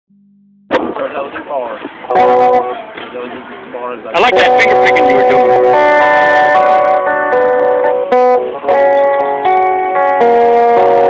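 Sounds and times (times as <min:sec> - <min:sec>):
electric guitar finger-picked: 0:01.8 - 0:03.6, 0:04.2 - 0:11.0.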